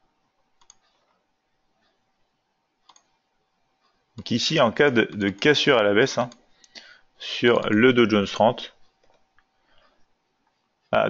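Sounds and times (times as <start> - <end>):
faint computer mouse clicks: 0.6 - 1.1, 2.8 - 3.2, 6.3 - 6.9.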